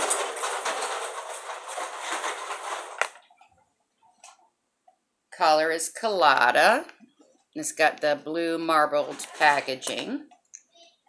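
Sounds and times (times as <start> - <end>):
rustling and rattling by hands: 0.0 - 4.5, 8.8 - 10.2.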